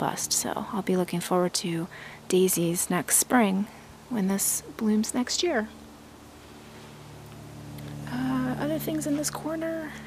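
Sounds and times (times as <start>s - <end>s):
faint low hum with hiss: 0.0s - 10.0s.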